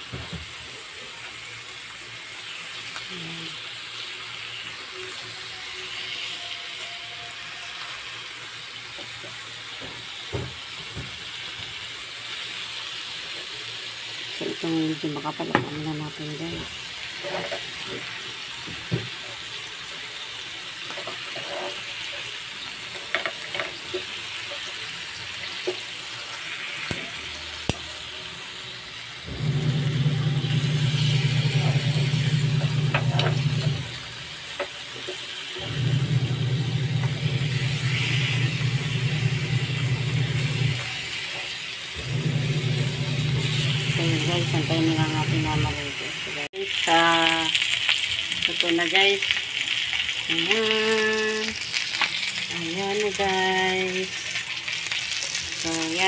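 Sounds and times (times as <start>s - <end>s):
meat sizzling in a pan: 0.0s - 56.0s
loud low mechanical hum: 23.1s - 46.5s.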